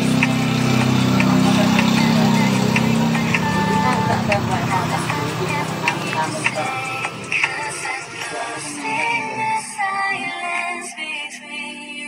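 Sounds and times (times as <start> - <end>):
small motorcycle engine running: 0.0 - 9.3
music track: 0.0 - 11.9.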